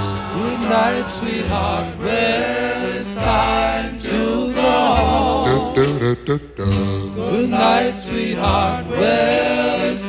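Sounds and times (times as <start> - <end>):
vocal group singing harmony: 0.0 - 10.0.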